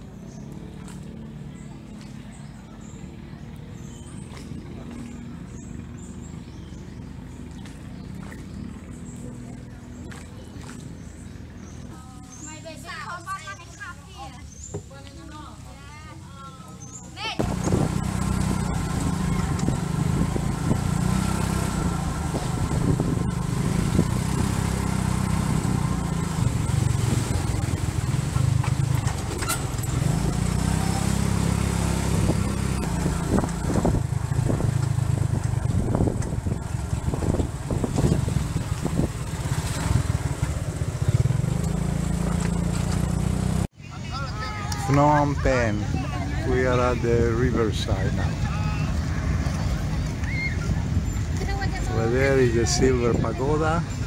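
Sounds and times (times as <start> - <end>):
motorcycle engine revving: 16.9 - 43.7.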